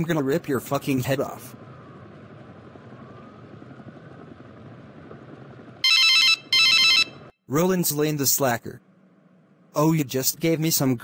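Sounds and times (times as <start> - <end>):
distant traffic hum: 0.0 - 11.0.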